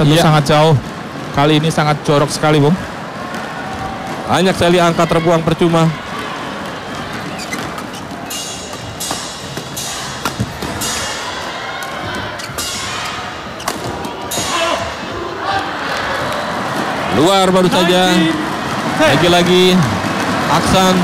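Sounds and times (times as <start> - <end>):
crowd noise in arena: 0.0 - 21.0
racket striking shuttlecock: 6.5 - 15.2.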